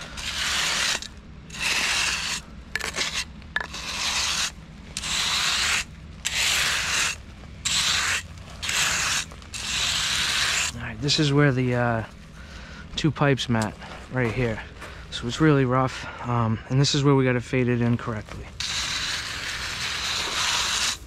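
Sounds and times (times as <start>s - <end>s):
trowel scraping over stone chips: 0.0s - 12.2s, 16.9s - 21.0s.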